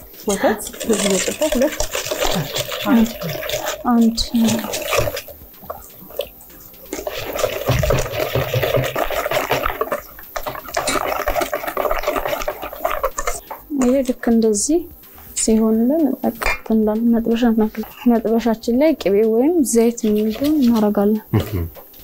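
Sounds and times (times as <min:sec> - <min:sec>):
whisk beating batter in metal bowl: 0:00.0 - 0:21.2.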